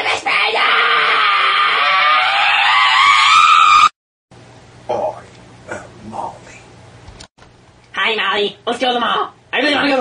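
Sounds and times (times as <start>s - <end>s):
high-pitched human scream: 0.0s - 3.9s.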